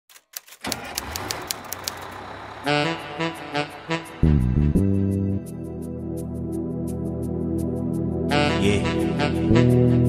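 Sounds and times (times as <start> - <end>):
rapid sharp clicks: 0.1 - 2.2.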